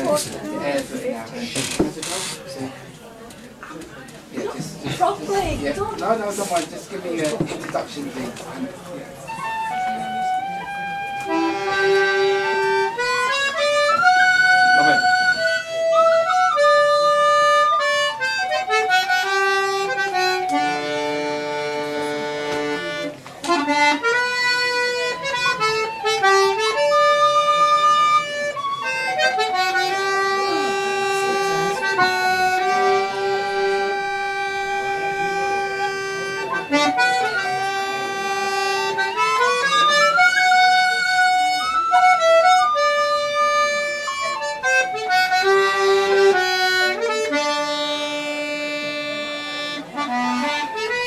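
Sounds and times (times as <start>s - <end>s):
button accordion: 0.0s - 2.2s, 9.4s - 51.0s.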